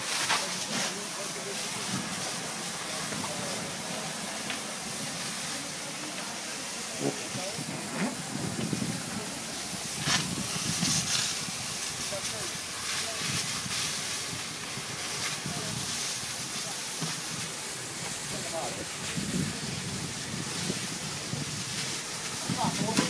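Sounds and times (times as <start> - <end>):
background voices: 0.0 - 20.7
fire hose spraying water: 0.0 - 23.0.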